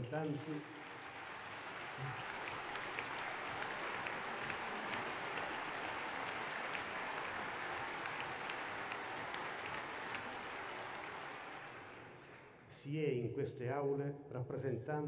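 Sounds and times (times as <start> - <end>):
crowd applauding: 0.0 - 12.6.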